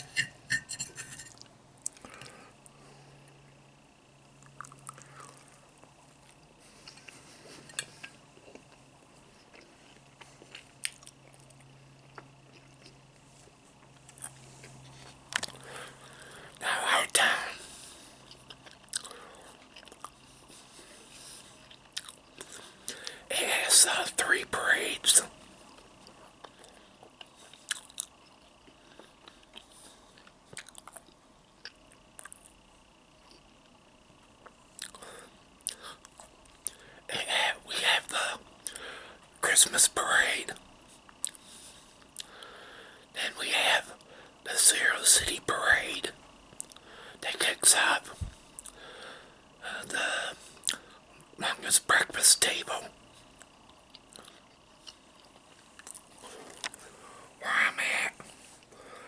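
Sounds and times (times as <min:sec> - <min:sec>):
man chewing: 0:04.4 - 0:13.0, 0:13.8 - 0:16.5, 0:17.5 - 0:23.2, 0:25.8 - 0:32.6, 0:34.3 - 0:36.9, 0:41.1 - 0:42.8, 0:49.8 - 0:51.3, 0:53.4 - 0:57.3
man whispering: 0:16.6 - 0:17.7, 0:23.3 - 0:25.3, 0:37.1 - 0:38.4, 0:39.4 - 0:40.6, 0:43.1 - 0:46.2, 0:47.2 - 0:48.2, 0:49.6 - 0:50.4, 0:51.4 - 0:53.0, 0:57.4 - 0:58.4.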